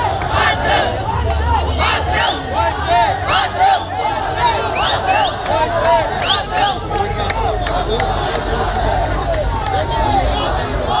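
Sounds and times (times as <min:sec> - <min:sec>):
crowd shouting slogans: 0:00.0 - 0:11.0.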